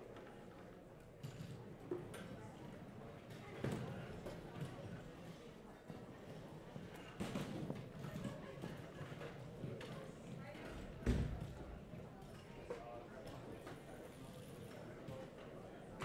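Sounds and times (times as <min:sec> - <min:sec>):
clatter of chairs and stands: 0:06.8 - 0:10.0.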